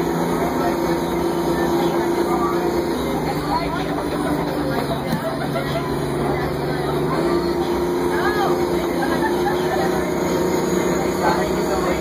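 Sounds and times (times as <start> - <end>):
bus diesel engine running: 0.0 - 12.0.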